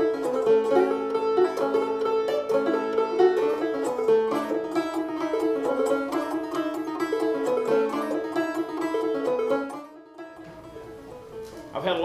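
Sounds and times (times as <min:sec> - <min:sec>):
banjo fingerpicked: 0:00.0 - 0:12.0.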